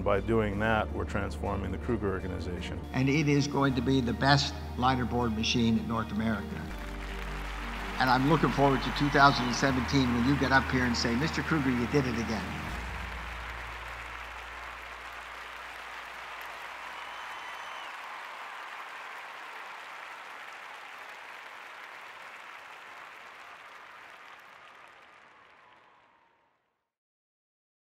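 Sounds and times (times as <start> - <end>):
audience applauding: 6.6 - 26.6.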